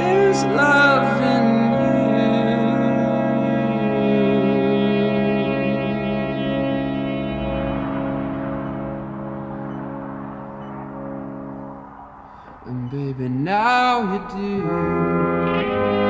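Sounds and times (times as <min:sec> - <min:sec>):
electric guitar chords: 0:00.0 - 0:12.6, 0:13.9 - 0:16.0
piano chords: 0:00.0 - 0:12.9.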